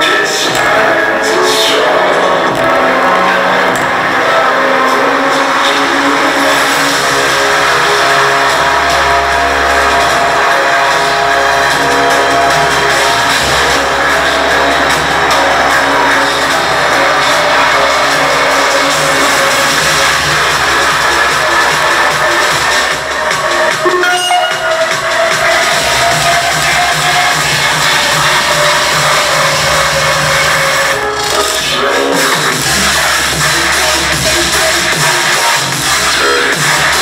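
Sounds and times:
deep bass: 0.0 - 37.0
electronic dance music through speaker: 0.0 - 37.0.

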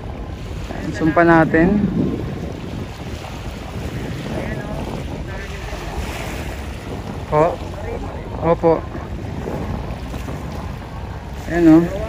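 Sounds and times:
small waves lapping: 0.0 - 12.0
wind buffeting microphone: 0.0 - 12.0.

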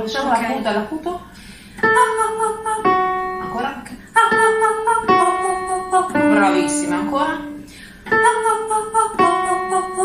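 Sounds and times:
woman singing vocal warm-up: 0.8 - 10.0
electric keyboard accompaniment: 1.8 - 10.0.

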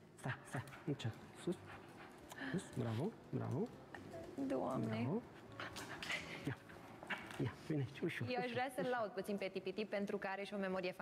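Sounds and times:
dog breathing: 0.3 - 3.1, 5.4 - 7.8.

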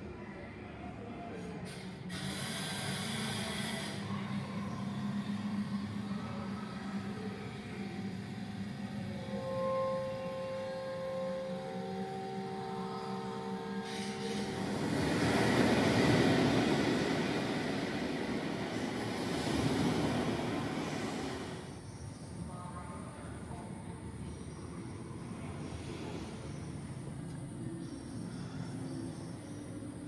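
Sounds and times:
broad rumbling noise: 1.8 - 30.0
low hum: 3.4 - 30.0.

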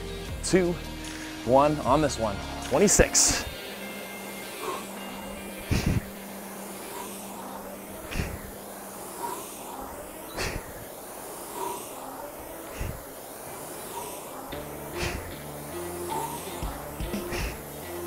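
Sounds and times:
rowing machine flywheel whooshing: 2.7 - 18.0.

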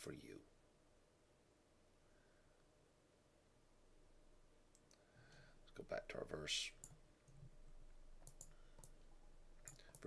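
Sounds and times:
faint sharp clicks: 4.7 - 5.4, 6.8 - 9.0, 9.6 - 10.0.

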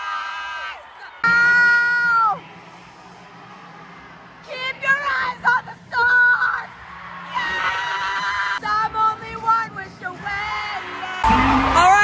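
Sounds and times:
faint arena crowd: 0.0 - 12.0
spectator high-pitched cheer: 10.8 - 12.0.

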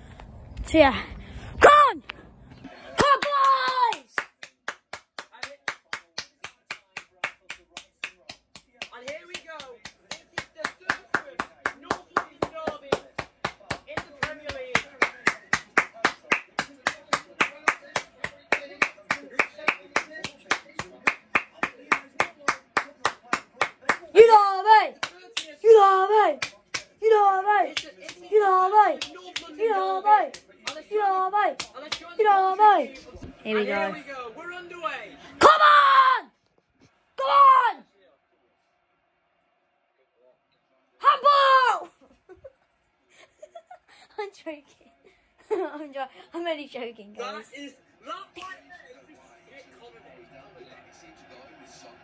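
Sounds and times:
person clapping hands: 3.0 - 24.2, 24.8 - 27.0, 27.6 - 32.1.

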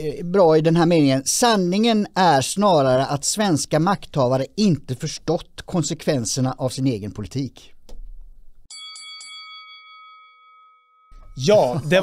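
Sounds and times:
bright bell-like chime: 8.7 - 12.0.

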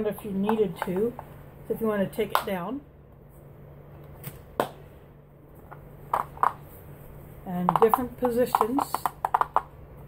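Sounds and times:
plastic clicks and knocks: 7.7 - 9.7.

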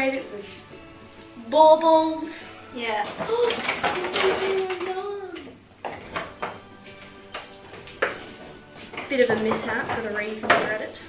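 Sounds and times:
soft background music: 0.0 - 11.0
baubles tapping: 2.8 - 5.1.

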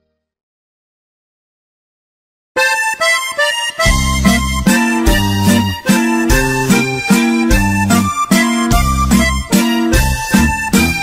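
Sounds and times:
accordion melody: 2.6 - 11.0
bass and guitar rhythm: 2.6 - 11.0.

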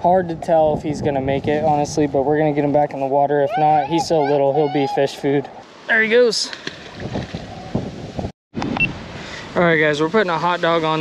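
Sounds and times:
wind buffeting microphone: 0.0 - 5.6, 6.7 - 9.2.

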